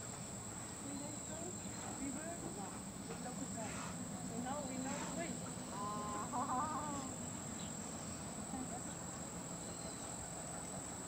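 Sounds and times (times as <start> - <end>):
steady high-pitched hiss: 0.0 - 11.0.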